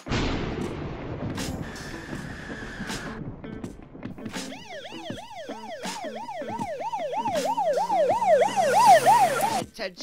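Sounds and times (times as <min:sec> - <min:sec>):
siren in fast yelp: 0:04.5 - 0:09.6.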